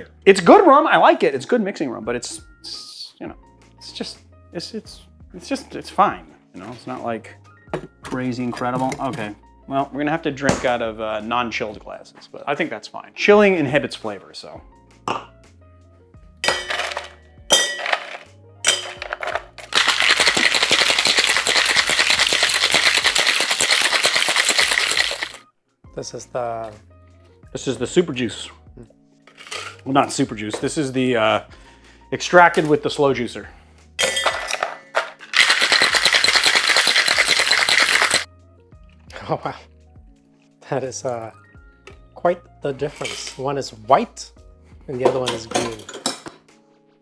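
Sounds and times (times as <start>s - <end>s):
ice clinking into metal tin: 16.4s - 25.4s, 29.3s - 29.9s, 34.0s - 38.3s
ice rattling in cocktail shaker: 16.5s - 25.4s, 34.0s - 38.3s.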